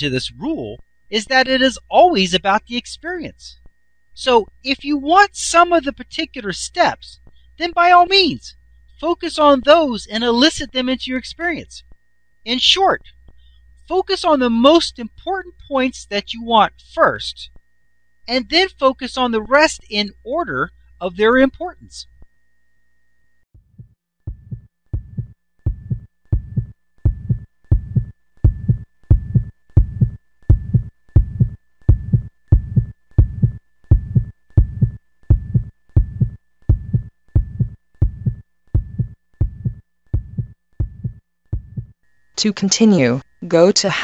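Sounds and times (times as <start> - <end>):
heartbeat pulse: 23.6 - 42.0.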